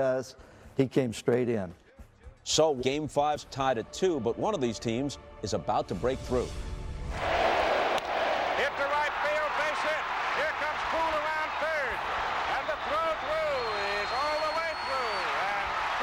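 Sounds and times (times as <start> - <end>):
large crowd roaring: 7.2 - 16.0
voices shouting and yelling: 8.5 - 16.0.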